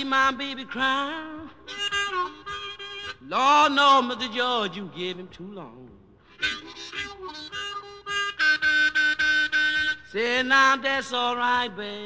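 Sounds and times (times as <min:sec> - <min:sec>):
person singing: 0:00.0 - 0:02.4, 0:03.1 - 0:07.2, 0:10.1 - 0:12.0
blues harmonica playing: 0:00.0 - 0:04.7, 0:06.2 - 0:12.0.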